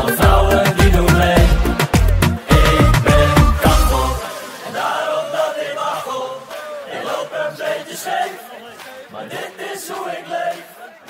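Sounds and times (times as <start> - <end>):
group chant-like singing: 0.0 - 11.0.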